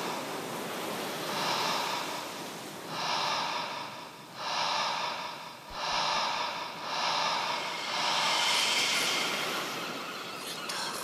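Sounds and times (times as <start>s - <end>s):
heavy breathy noise swells: 0.0s - 11.0s
electronic film soundtrack: 1.3s - 11.0s.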